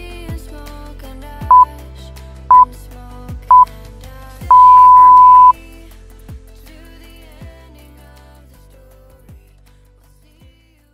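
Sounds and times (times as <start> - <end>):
pop music: 0.0 - 9.4
interval timer beeps: 4.5 - 5.5.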